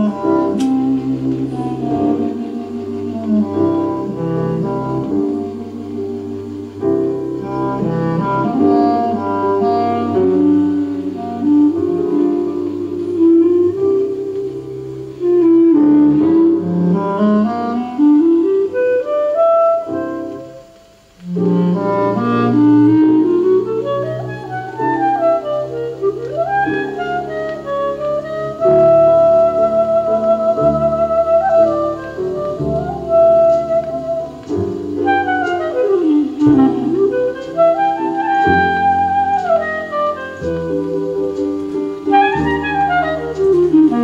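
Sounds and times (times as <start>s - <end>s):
jazz clarinet ballad: 0.0s - 44.0s
small group accompaniment: 0.0s - 44.0s.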